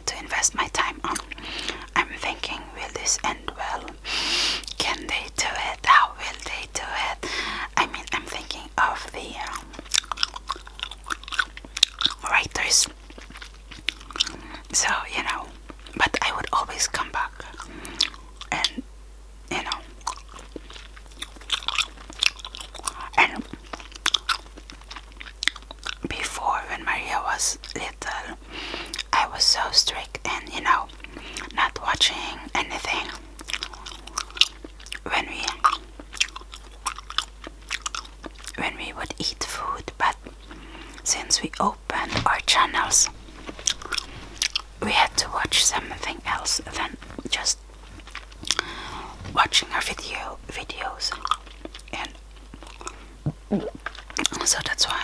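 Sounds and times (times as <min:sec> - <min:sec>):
gum chewing mouth clicks: 0:09.4 - 0:14.8, 0:19.6 - 0:26.2, 0:33.1 - 0:38.6, 0:42.1 - 0:47.4, 0:48.0 - 0:50.2, 0:51.1 - 0:54.5.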